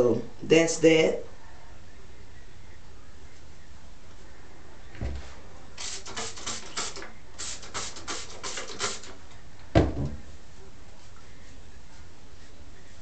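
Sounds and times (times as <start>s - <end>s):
spray bottle hissing sprays: 5.8s - 9.2s
thump: 9.7s - 10.2s.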